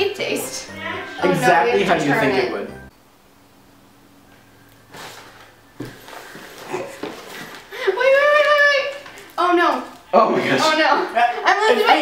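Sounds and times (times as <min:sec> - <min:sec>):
wrapping paper rustling: 0:04.9 - 0:10.1.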